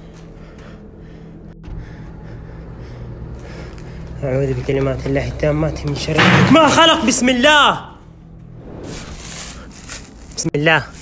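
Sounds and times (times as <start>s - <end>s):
person breathing heavily: 0.0s - 4.2s
steady low hum: 0.0s - 4.7s.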